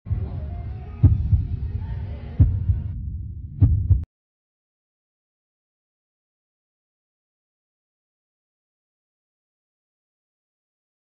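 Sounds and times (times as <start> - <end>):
low throbbing drone: 0.1 - 4.1
heartbeat double thumps: 1.0 - 1.8, 2.4 - 4.1.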